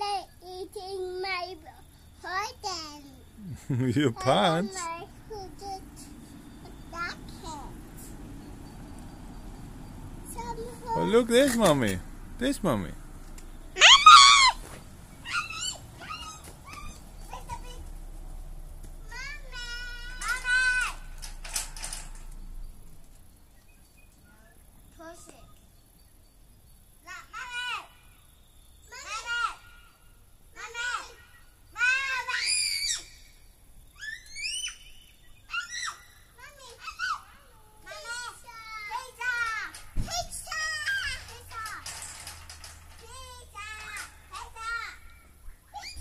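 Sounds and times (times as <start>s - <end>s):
dog whining: 13.8s - 14.6s
children squealing and shrieking: 13.8s - 17.8s, 19.1s - 21.1s, 28.9s - 29.8s, 30.6s - 33.4s, 34.0s - 46.0s.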